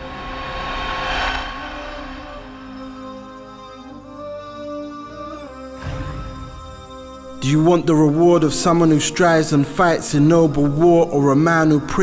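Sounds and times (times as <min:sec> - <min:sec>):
rushing whoosh: 0:00.0 - 0:04.0
sustained music notes: 0:00.0 - 0:11.5.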